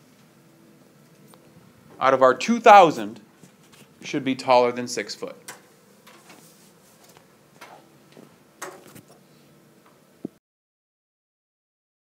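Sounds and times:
low room noise: 0.0 - 10.4.

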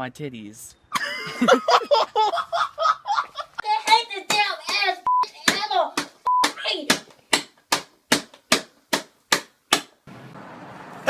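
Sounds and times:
sharp smacks: 5.4 - 10.0.

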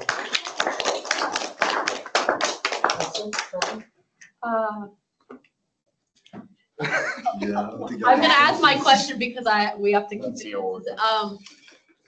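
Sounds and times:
people applauding: 0.0 - 3.8, 7.4 - 9.0.

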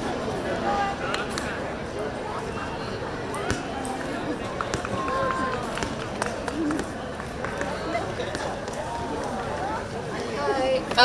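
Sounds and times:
distant crowd talking: 0.0 - 11.0
outdoor background noise: 0.0 - 11.0.

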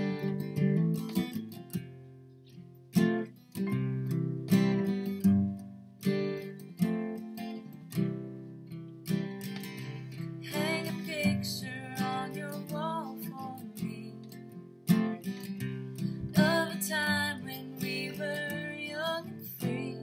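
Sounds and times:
acoustic guitar strumming: 0.0 - 20.0
woman singing: 10.4 - 14.4, 16.3 - 20.0.

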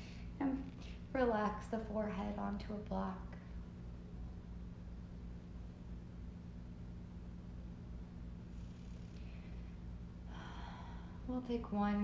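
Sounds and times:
low steady hum: 0.0 - 12.0
woman breathing softly: 9.1 - 11.3.

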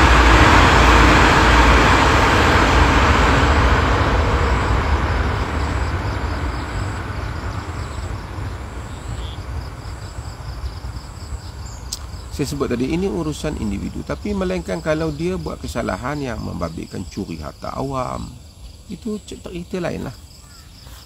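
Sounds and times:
motor vehicle passing: 0.0 - 19.0.

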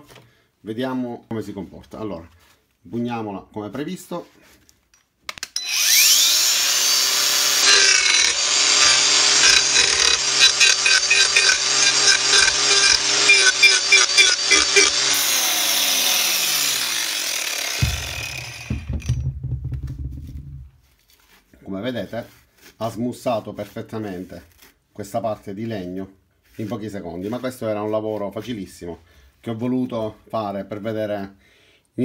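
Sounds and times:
grinder cutting wood: 5.6 - 19.2
angle grinder whine: 5.6 - 19.3
knocks: 17.8 - 20.8.

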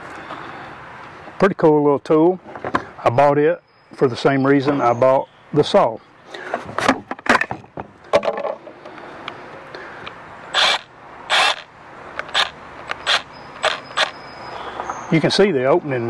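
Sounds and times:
power tools handling clicks and knocks: 6.6 - 8.7.

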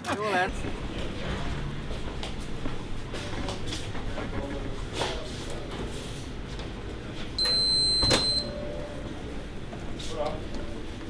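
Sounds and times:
door access reader beep: 7.4 - 8.8.

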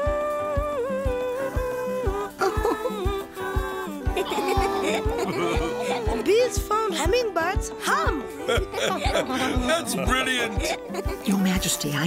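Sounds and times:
person humming a melody: 0.0 - 11.5
background music with soft beat: 0.0 - 12.0.

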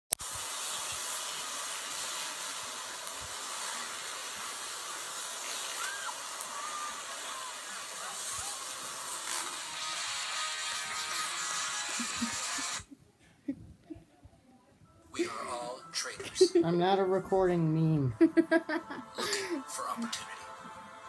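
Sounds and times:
steady hiss: 0.1 - 12.9.

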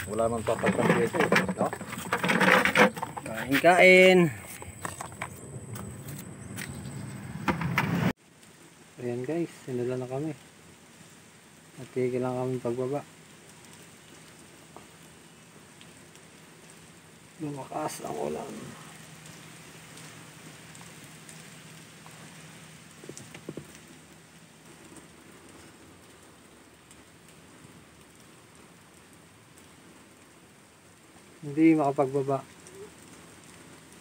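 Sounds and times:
person's voice: 0.0 - 4.7, 17.4 - 18.9
rain on vehicle cab: 0.0 - 34.0.

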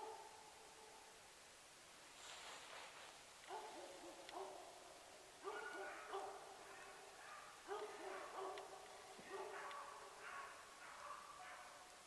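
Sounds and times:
distant hounds baying: 3.5 - 11.9.

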